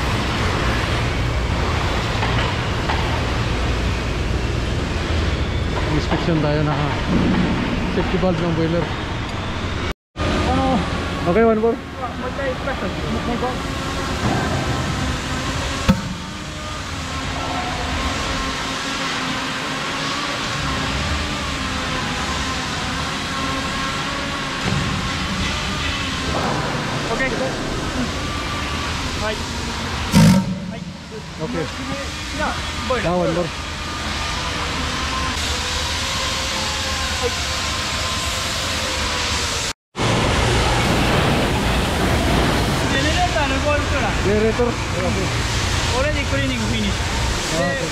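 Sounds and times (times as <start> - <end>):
workshop noise: 0.0 - 47.9.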